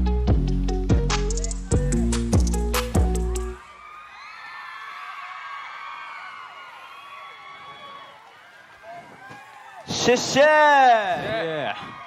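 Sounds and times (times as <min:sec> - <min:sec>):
crowd screaming and cheering: 0:01.3 - 0:12.0.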